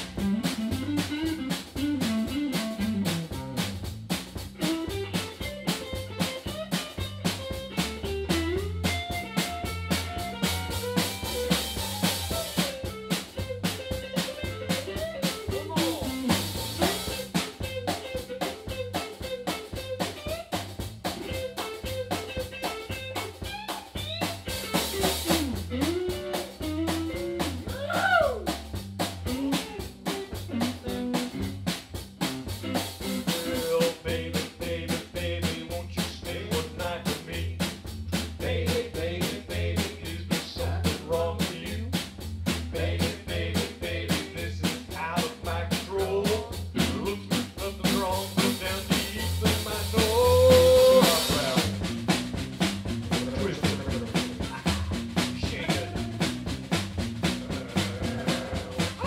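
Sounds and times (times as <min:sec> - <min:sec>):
sliding lead guitar: 0:00.0 - 0:03.6, 0:04.6 - 0:28.5, 0:29.2 - 0:31.8
bass line: 0:00.0 - 0:59.0
drum kit beat: 0:00.0 - 0:59.0.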